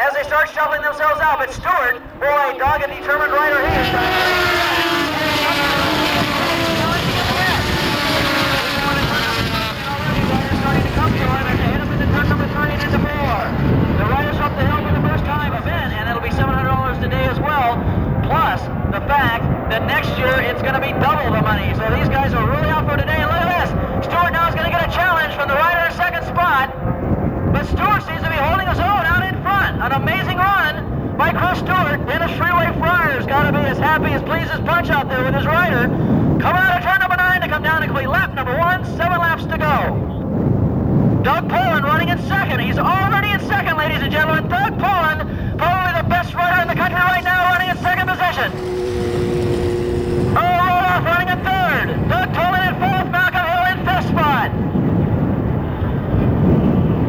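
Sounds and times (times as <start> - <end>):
announcer over public address: 0.0 - 26.8, 41.2 - 54.8
racing motorcycles passing: 2.0 - 16.4, 47.7 - 55.8.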